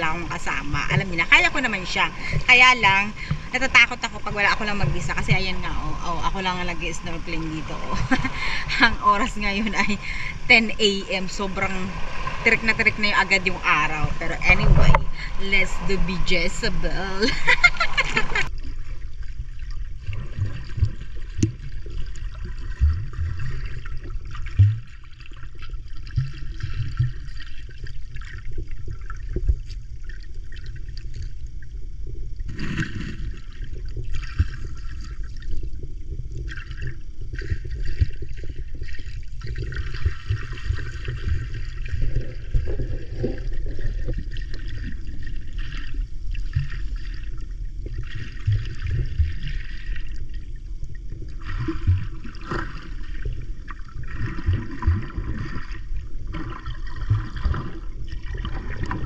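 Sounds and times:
hissy water splashing: 0.0s - 31.4s
steady low rumble: 0.0s - 58.2s
muffled underwater water sloshing: 0.0s - 59.0s.

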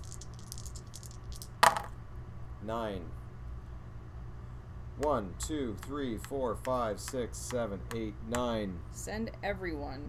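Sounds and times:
dice clattering on game board: 0.0s - 1.9s
dice shaken in hand clicking: 0.0s - 1.9s.

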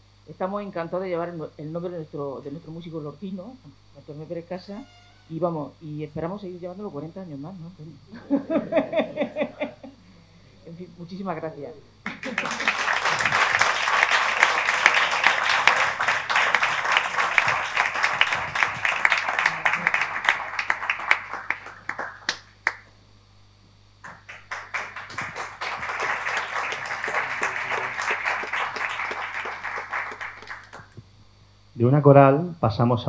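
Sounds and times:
audience applause: 12.1s - 22.9s, 24.0s - 31.0s.

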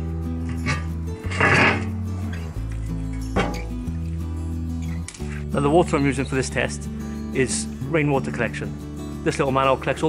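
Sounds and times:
background music with bass: 0.0s - 10.0s
manhole cover scraping clank: 0.4s - 2.5s, 3.1s - 3.8s.

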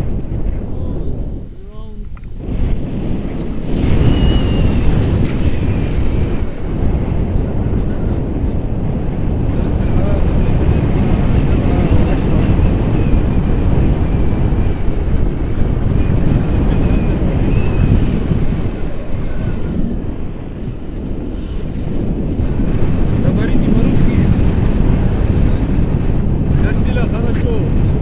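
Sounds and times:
wind buffeting microphone: 0.0s - 28.0s
faint high whistle: 3.9s - 4.9s, 16.9s - 18.1s.

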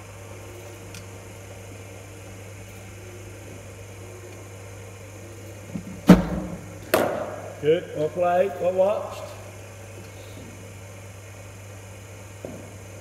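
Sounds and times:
steady low hum: 0.0s - 13.0s
bowling machine firing ball: 6.0s - 7.4s.

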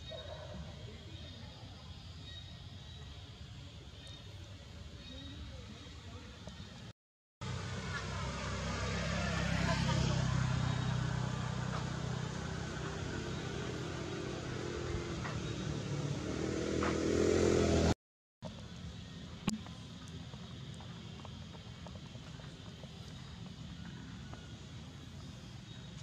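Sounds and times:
traffic passing: 7.4s - 26.0s
vehicle engine humming: 7.4s - 26.0s.

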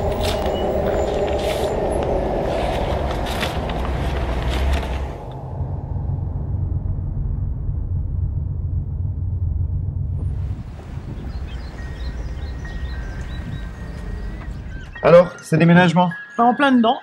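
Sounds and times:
outdoor street ambience: 0.0s - 6.5s, 9.8s - 16.4s
car engine and road rumble: 0.0s - 15.1s
high bird chirps: 10.9s - 17.0s.

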